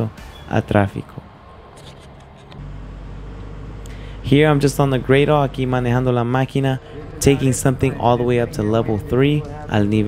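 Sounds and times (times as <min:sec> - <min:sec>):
faint street noise: 0:00.0 - 0:10.0
diesel engine running: 0:01.8 - 0:10.0.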